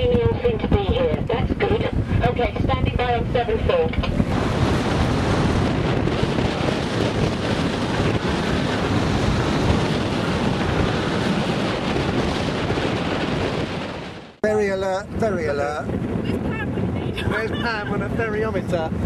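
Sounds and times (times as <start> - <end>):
water and waves washing: 0.0 - 19.0
wind buffeting microphone: 0.0 - 19.0.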